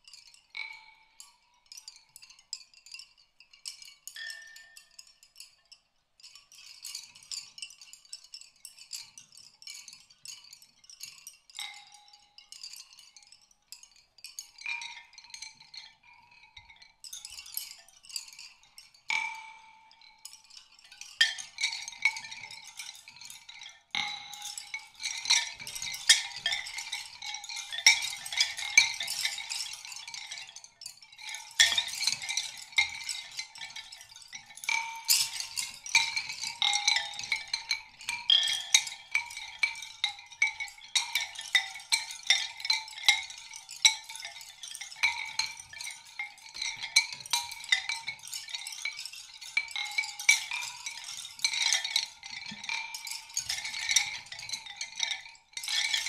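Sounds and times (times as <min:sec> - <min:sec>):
chime-like clicking and rattling: 0:06.2 - 0:56.0.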